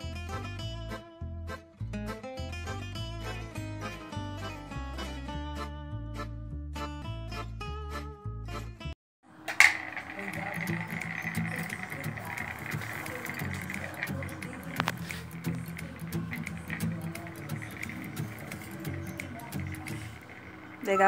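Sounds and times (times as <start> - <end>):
spinning top whirring on tiles: 9.3 - 21.0
spinning top clicking on tile: 9.4 - 21.0.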